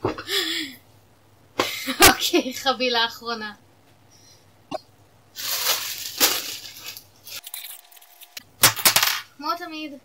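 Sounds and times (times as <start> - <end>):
plastic bag rustling and crinkling: 5.3 - 8.2.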